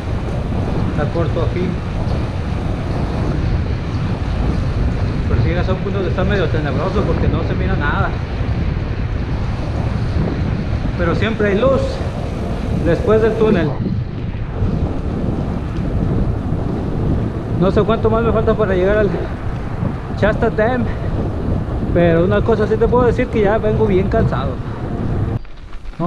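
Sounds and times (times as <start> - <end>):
bicycle rolling on pavement: 0.0 - 26.0
wind buffeting microphone: 0.0 - 26.0.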